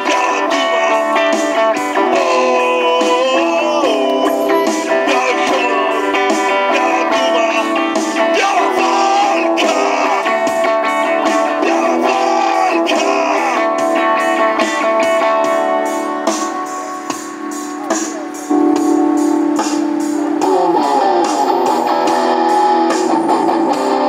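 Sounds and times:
electric guitar strumming: 0.0s - 24.0s
sharp percussion hits: 14.6s - 24.0s.

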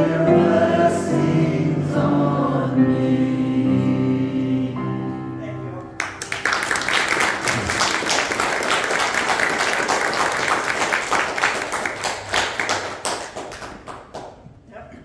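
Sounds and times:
congregation applauding: 6.0s - 14.4s.

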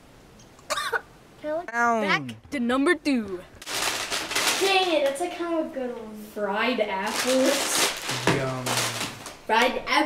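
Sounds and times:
boy coughing: 0.7s - 1.1s.

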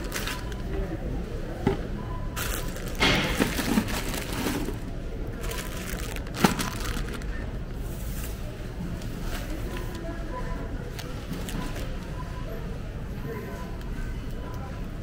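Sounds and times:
shopping cart rumbling: 0.0s - 1.2s, 2.3s - 12.4s
shopping cart clatters: 2.4s - 7.4s.

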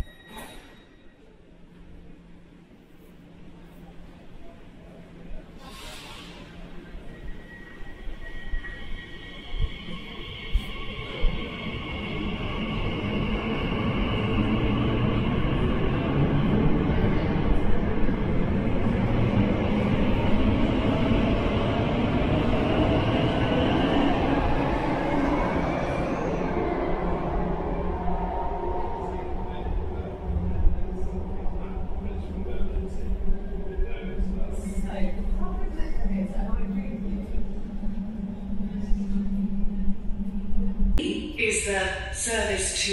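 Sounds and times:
train rumbling in tunnel: 0.0s - 42.9s.

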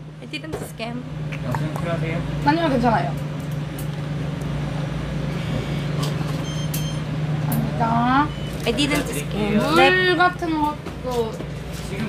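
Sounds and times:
vehicle engine hum: 0.0s - 12.0s
short high-pitched beep: 6.4s - 7.1s.

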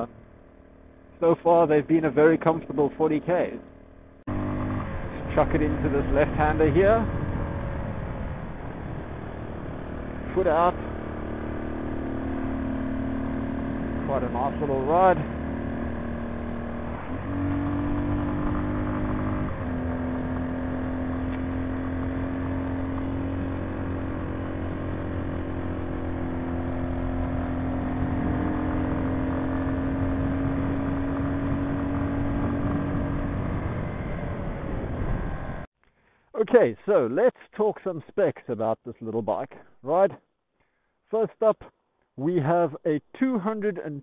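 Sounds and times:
motorcycle engine pulling: 1.2s - 7.7s, 8.7s - 34.2s.

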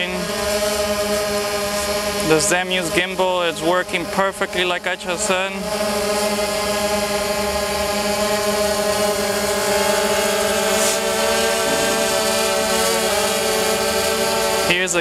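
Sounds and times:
quadcopter drone propellers buzzing: 0.0s - 15.0s.

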